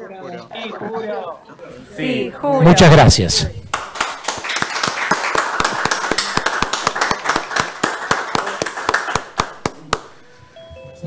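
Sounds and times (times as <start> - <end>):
people clapping: 3.6 - 10.3.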